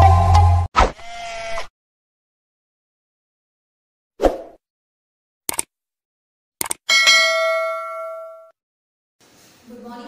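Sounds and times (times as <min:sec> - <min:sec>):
bell ding: 0:06.9 - 0:08.6.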